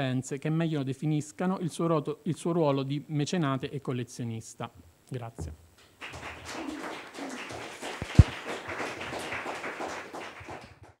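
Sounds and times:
audience applauding: 0:06.0 - 0:11.0.

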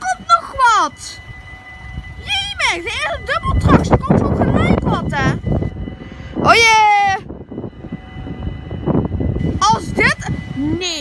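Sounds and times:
level crossing bell ringing: 0:00.0 - 0:11.0
low rumble: 0:00.0 - 0:11.0.

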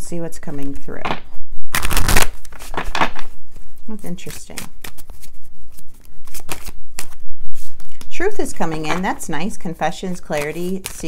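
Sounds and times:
cards being shuffled: 0:01.0 - 0:09.2, 0:10.0 - 0:11.0.

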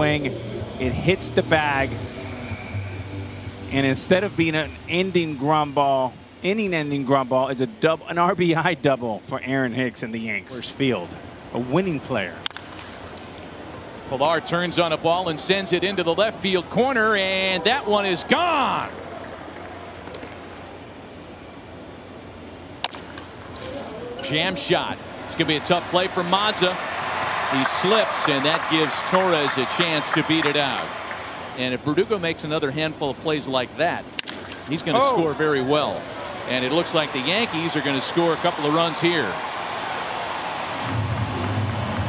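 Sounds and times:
low steady hum: 0:00.0 - 0:26.9
ballpark background ambience: 0:00.0 - 0:42.0.

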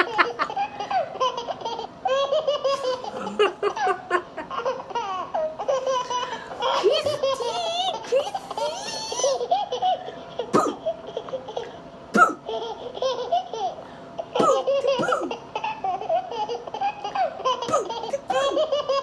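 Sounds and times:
woman laughing and giggling: 0:00.0 - 0:01.2, 0:02.7 - 0:04.9, 0:06.0 - 0:09.5, 0:17.7 - 0:19.0.

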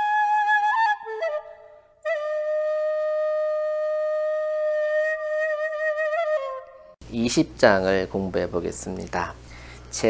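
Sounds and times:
flute holding long note: 0:00.0 - 0:07.0.

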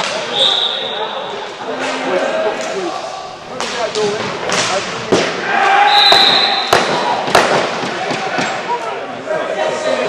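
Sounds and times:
players' voices echoing: 0:00.0 - 0:10.0
whistle blast: 0:00.3 - 0:01.0, 0:05.9 - 0:06.8
knocks of stick and ball: 0:06.1 - 0:08.6.

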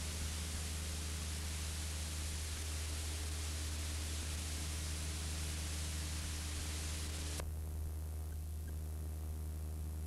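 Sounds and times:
low electrical hum: 0:00.0 - 0:10.0
recording hiss: 0:00.0 - 0:10.0.

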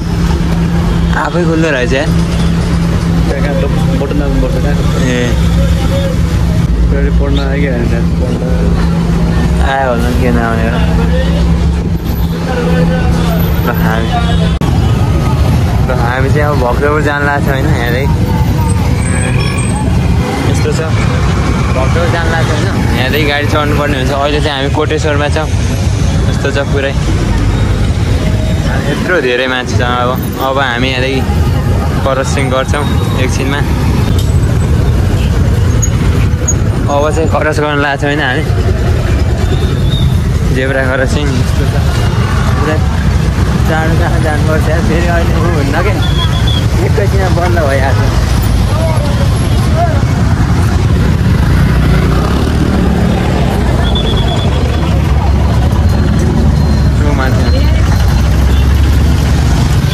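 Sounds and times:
passing motorbikes and bus rumble: 0:00.0 - 0:59.9
people's voices: 0:00.0 - 0:59.9
high-pitched beeping: 0:53.6 - 0:58.8.

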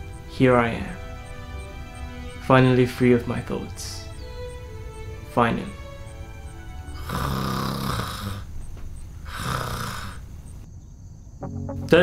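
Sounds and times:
man snoring: 0:07.0 - 0:08.5, 0:09.3 - 0:10.2
plucked guitar music: 0:11.4 - 0:12.0.

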